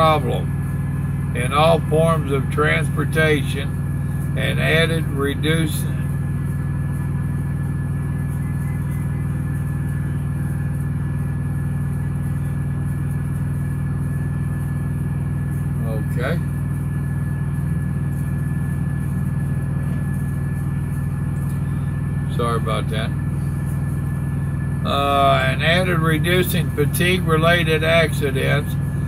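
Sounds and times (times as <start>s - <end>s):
diesel truck engine idling: 0.0s - 29.0s.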